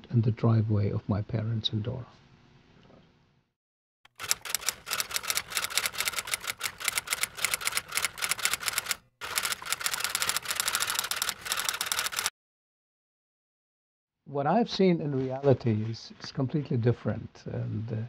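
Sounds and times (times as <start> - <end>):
typewriter keys clattering: 4.1 - 12.3.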